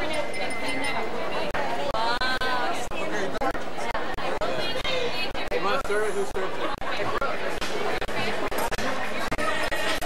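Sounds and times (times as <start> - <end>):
indistinct chatter of guests: 0.0 - 10.0.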